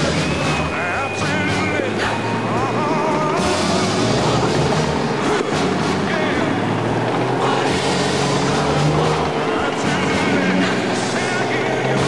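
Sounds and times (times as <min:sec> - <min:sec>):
armoured vehicle engine running: 0:00.0 - 0:12.0
crowd noise: 0:00.0 - 0:12.0.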